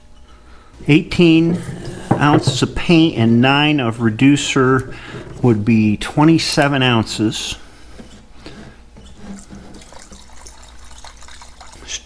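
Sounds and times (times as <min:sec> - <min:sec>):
liquid pouring into plastic cup: 0:09.2 - 0:12.0.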